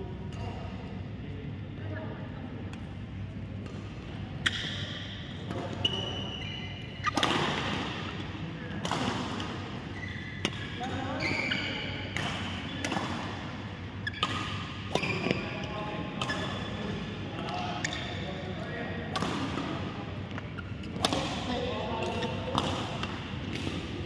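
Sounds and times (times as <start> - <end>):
shoes squeaking on court floor: 4.4 - 8.0, 9.8 - 12.8, 14.0 - 18.4
racket striking shuttlecock: 7.0 - 8.0, 8.8 - 9.6, 19.1 - 19.7, 22.0 - 24.0.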